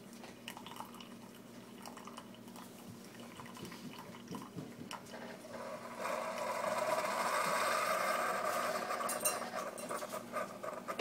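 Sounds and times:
water stream into mug: 0.4 - 10.1
coffee machine pump: 5.1 - 11.0.

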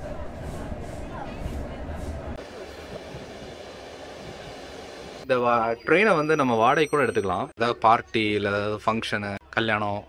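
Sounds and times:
train rumbling along track: 0.0 - 5.2.

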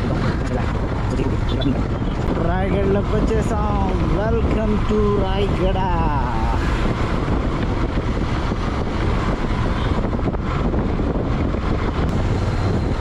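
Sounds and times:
motorcycle engine running: 0.0 - 13.0
wind rushing over microphone: 0.0 - 13.0.

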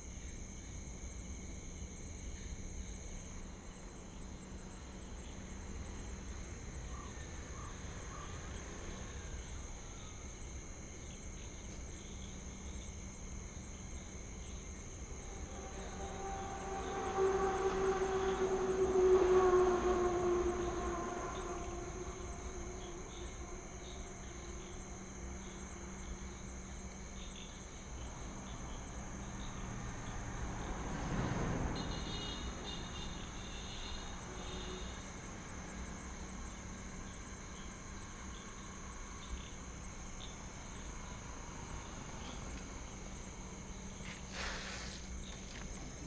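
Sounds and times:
crickets chirring: 0.0 - 46.0
vehicle passing by: 15.1 - 26.3, 28.0 - 36.5.

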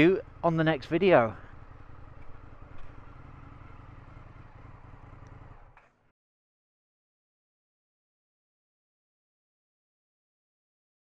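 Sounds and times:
motorcycle engine running: 0.0 - 6.1.

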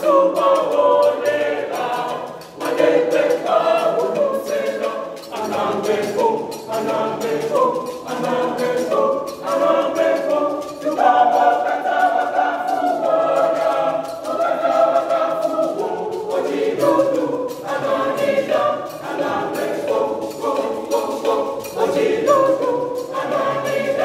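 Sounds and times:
children's choir singing: 0.0 - 24.0.

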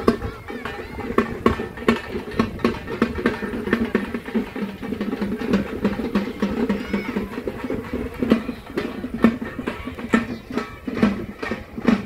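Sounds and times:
drum-led music: 0.0 - 12.0.

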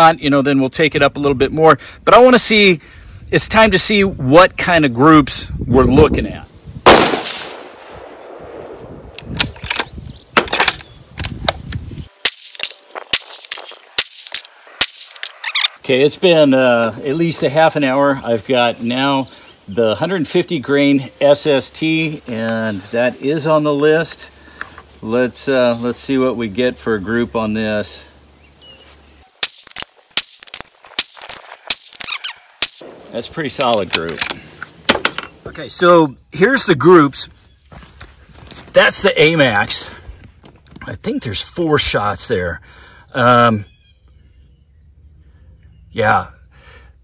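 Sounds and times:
rifle shot: 6.8 - 9.5
rapid gunfire cracks: 6.9 - 8.7.

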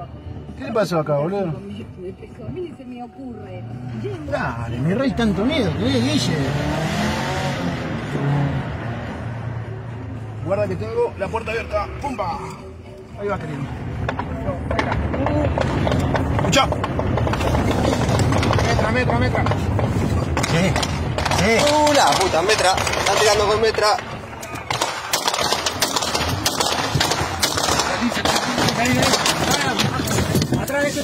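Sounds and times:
car engine humming: 0.0 - 31.0
car engine running: 13.2 - 24.4
quiet voices talking: 17.5 - 31.0
automatic gunfire: 24.7 - 30.2.

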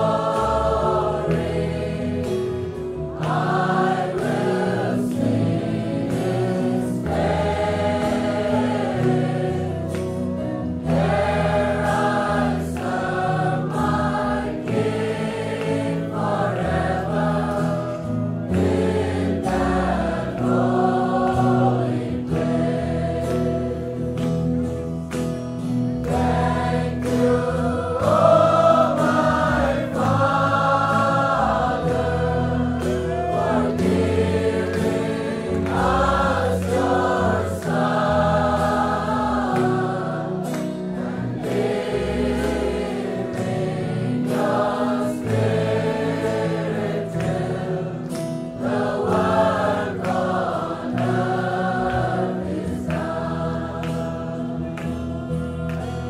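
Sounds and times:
choir singing: 0.0 - 24.8, 26.0 - 56.0
sustained accompaniment: 0.0 - 56.0.

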